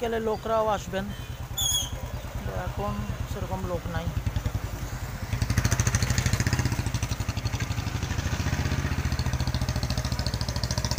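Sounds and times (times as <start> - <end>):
motorcycle engine idling: 0.0 - 10.9.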